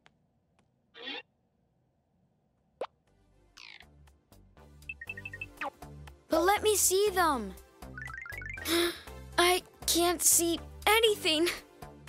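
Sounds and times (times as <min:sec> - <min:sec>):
soft background music: 0:03.0 - 0:12.0.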